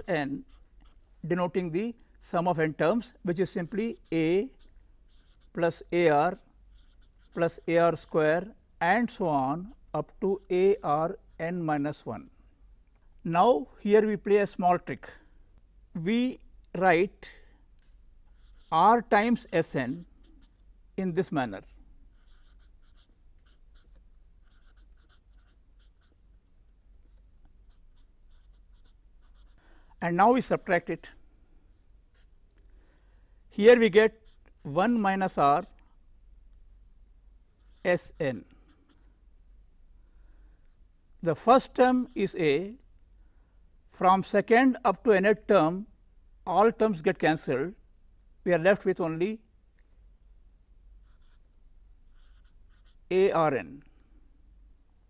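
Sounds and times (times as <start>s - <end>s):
marker writing on a board: 0.0s - 1.0s, 3.4s - 8.5s, 18.3s - 20.6s, 22.1s - 26.2s, 27.0s - 29.6s, 34.1s - 36.0s, 37.6s - 39.1s, 51.0s - 51.4s, 52.1s - 53.0s.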